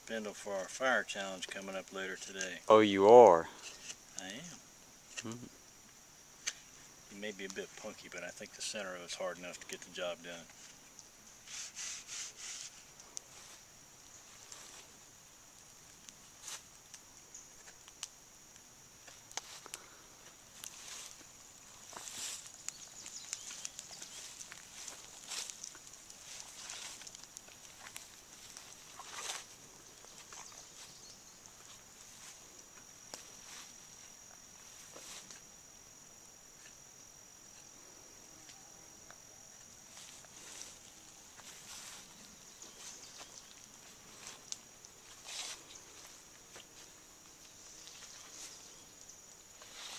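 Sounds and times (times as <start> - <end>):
light clicks and crackles: 1.4 - 2.7, 9.3 - 11.8, 12.5 - 14.9, 15.5 - 35.5, 38.4 - 49.9
rustling: 10.4 - 15.0, 19.0 - 35.4, 39.8 - 49.9
high-pitched insect drone: 19.5 - 49.9.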